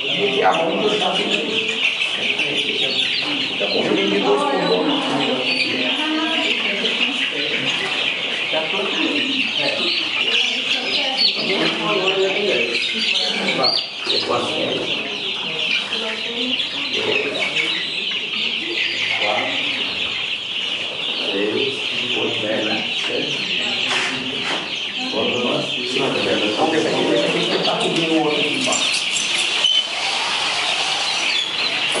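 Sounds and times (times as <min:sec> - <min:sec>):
men talking: 0:00.0 - 0:10.2, 0:11.4 - 0:15.2, 0:16.9 - 0:19.8, 0:20.8 - 0:29.3
chickens calling: 0:00.0 - 0:32.0.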